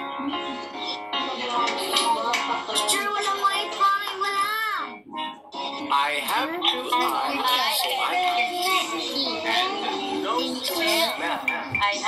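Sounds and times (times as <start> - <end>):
children's song over music: 0.0 - 12.0.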